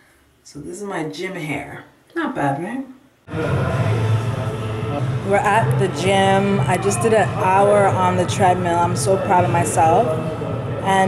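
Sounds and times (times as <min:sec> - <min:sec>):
music with strong bass line: 0:03.3 - 0:11.0.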